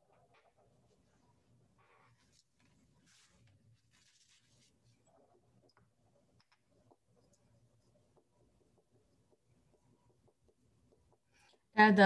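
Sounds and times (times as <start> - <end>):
faint rustle: 1.8 - 5.3.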